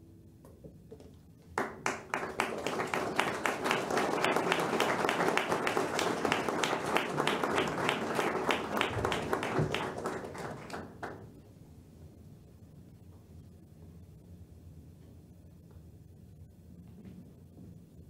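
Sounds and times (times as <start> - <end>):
audience applauding: 1.6 - 11.2.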